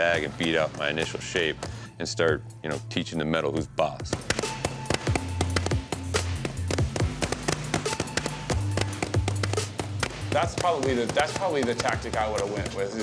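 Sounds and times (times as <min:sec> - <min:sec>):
background music: 0:00.0 - 0:13.0
mallet beating sheet metal: 0:04.1 - 0:13.0.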